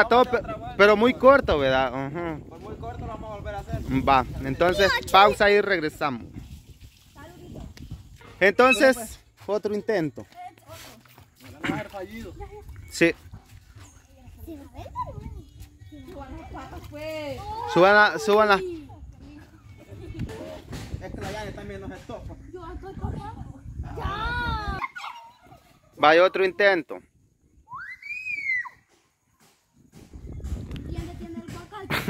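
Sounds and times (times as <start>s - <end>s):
young people talking and calling out: 0.0s - 32.0s.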